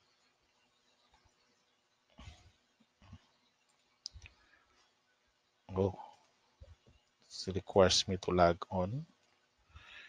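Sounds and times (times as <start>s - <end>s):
faint mouse clicks: 2.1s - 4.9s.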